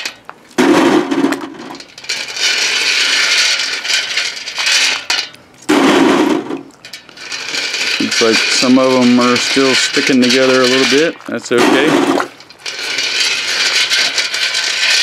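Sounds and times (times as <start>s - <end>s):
lead bullets clattering on mesh: 12.3s - 15.0s.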